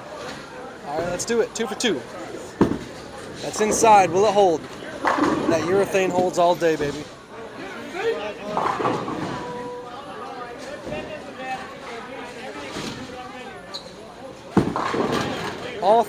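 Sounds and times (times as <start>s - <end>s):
people chattering: 0.0s - 16.0s
bowling ball rolling: 3.7s - 6.3s, 8.5s - 9.7s, 14.6s - 15.6s.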